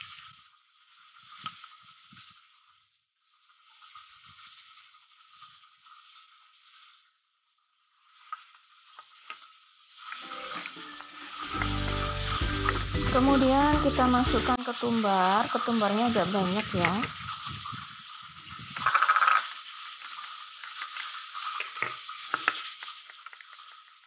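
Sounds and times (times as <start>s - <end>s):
food deep-frying in oil: 0.0s - 24.0s
background music: 10.2s - 14.7s.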